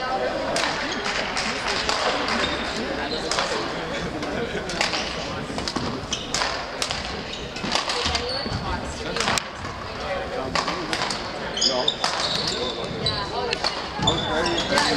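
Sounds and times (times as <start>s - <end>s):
voices talking: 0.0s - 14.9s
racket hitting shuttlecock: 0.6s - 2.5s, 3.3s - 3.6s, 4.7s - 8.3s, 9.1s - 9.8s, 10.5s - 11.3s, 12.0s - 12.5s
shoes squeaking on gym floor: 2.1s - 3.6s, 5.8s - 9.8s, 11.4s - 14.9s.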